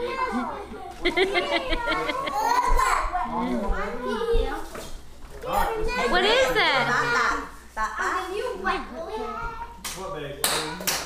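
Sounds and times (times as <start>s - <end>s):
people and children talking: 0.0s - 9.7s.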